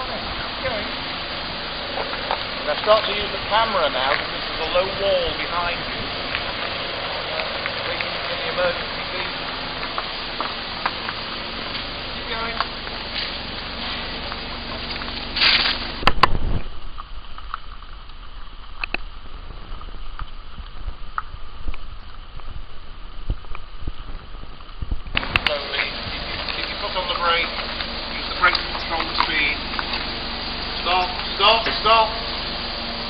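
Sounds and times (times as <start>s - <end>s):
indistinct talking: 0.0s - 16.0s, 25.2s - 33.0s
loud bumps: 0.0s - 33.0s
steady outdoor noise: 0.0s - 33.0s
scattered clicks: 16.0s - 19.1s.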